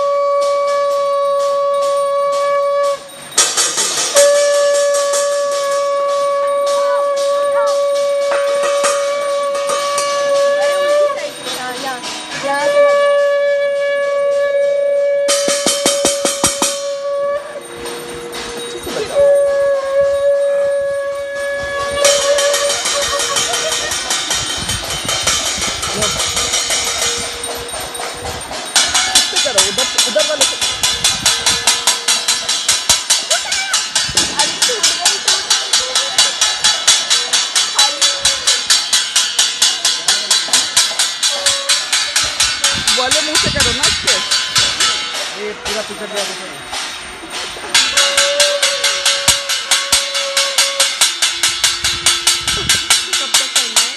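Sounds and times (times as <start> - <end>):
conch shell blown: 0.0 - 11.6, 12.3 - 29.4, 41.0 - 43.5, 47.7 - 53.2
metal plates beaten with sticks: 0.0 - 53.9.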